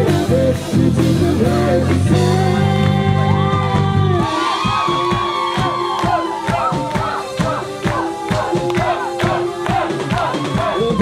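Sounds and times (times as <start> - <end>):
rhythmic audience clapping: 1.8 - 11.0
audience cheering and whooping: 3.3 - 11.0.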